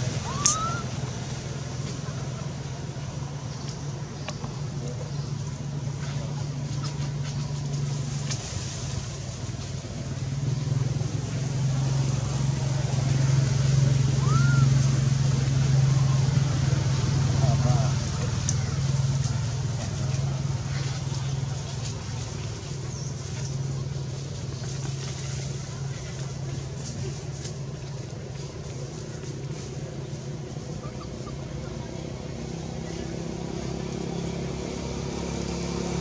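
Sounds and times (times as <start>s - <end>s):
low motor drone: 0.0s - 36.0s
short chirp: 0.3s - 0.9s.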